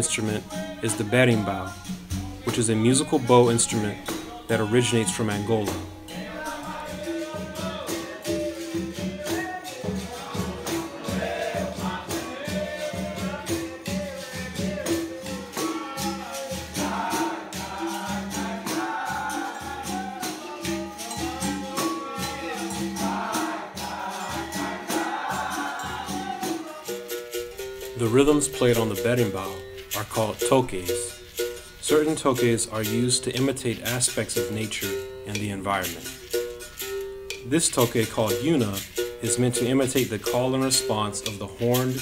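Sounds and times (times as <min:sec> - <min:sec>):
group singing: 0:00.0 - 0:27.6
berimbau: 0:00.0 - 0:42.0
pandeiro: 0:00.0 - 0:42.0.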